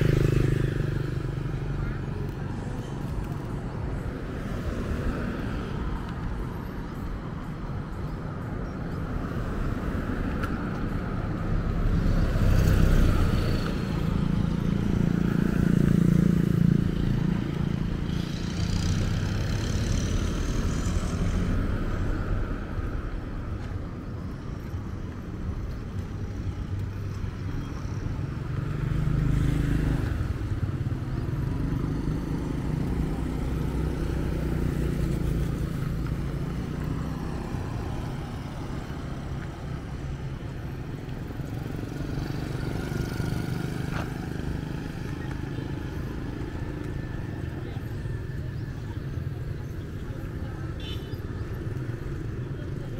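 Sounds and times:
motorbike passing: 0.0s - 6.5s, 8.9s - 52.9s.

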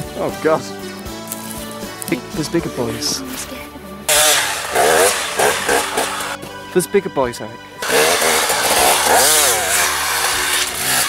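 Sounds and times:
dirt bike engine revving: 4.1s - 6.4s, 7.8s - 11.0s.

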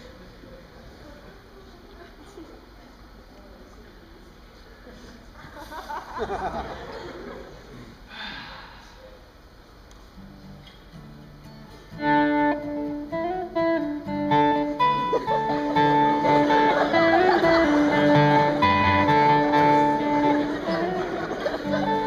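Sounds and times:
live band playing: 11.9s - 22.0s.

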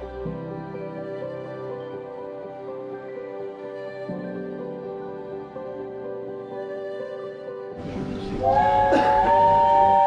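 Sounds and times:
steam locomotive whistle chord: 7.9s - 10.0s.

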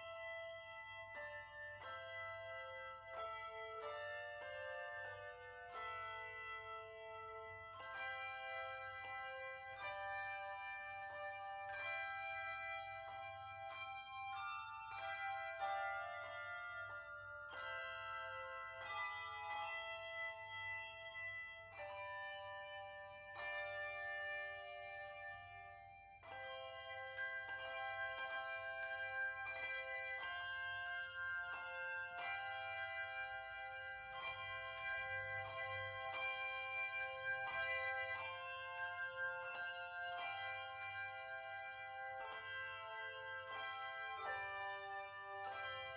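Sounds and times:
handbell choir ringing chords: 0.0s - 45.9s.

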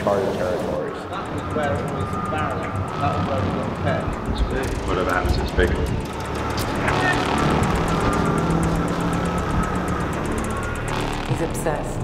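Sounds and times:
low drone: 0.0s - 12.0s
high held tone: 0.8s - 12.0s.

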